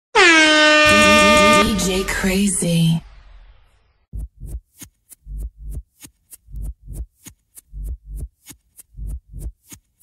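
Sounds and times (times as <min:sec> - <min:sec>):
air horn blast: 0:00.1 - 0:02.3
person speaking: 0:00.9 - 0:03.0.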